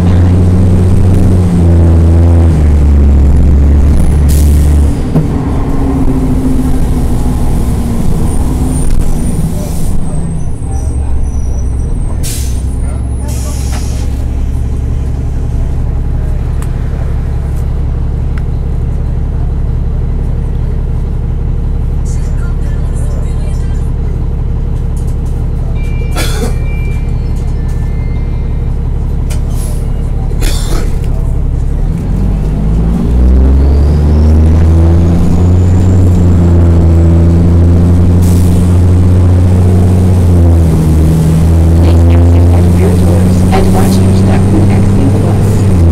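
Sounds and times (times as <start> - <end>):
bus diesel engine: 0.0 - 45.9
air brake hisses: 12.2 - 14.2.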